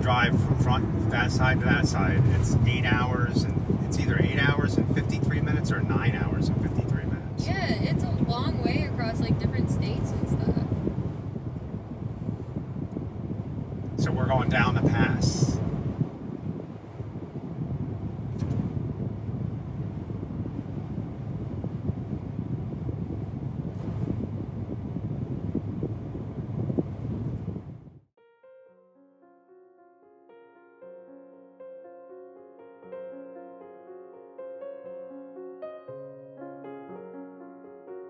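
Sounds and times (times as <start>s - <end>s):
car cabin road rumble: 0.0s - 28.0s.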